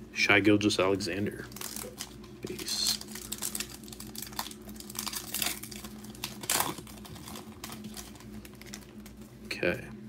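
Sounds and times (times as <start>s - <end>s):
foil wrapper crinkling and tearing: 1.3s - 9.2s.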